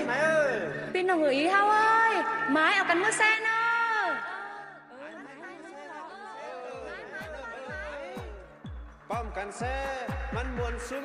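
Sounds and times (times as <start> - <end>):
people talking over one another: 0.0 - 11.0
bass drum beat: 7.7 - 11.0.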